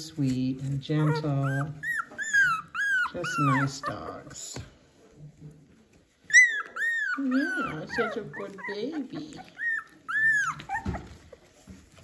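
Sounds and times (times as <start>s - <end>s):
puppy whimpering: 0.7s - 4.6s, 6.1s - 12.0s.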